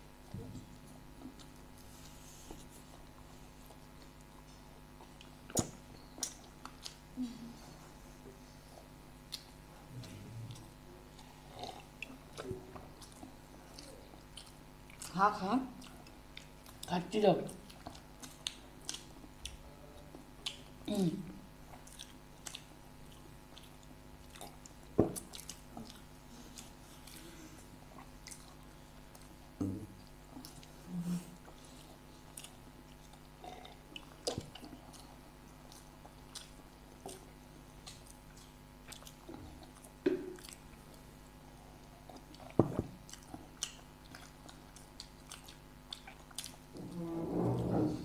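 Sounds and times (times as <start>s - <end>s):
people chewing food: 0.0s - 47.8s
faint steady hum: 0.0s - 48.0s.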